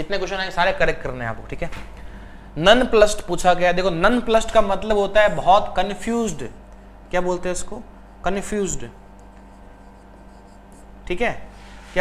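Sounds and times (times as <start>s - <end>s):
steady low hum: 0.0s - 12.0s
stylus scratching on pen tablet: 9.1s - 11.0s.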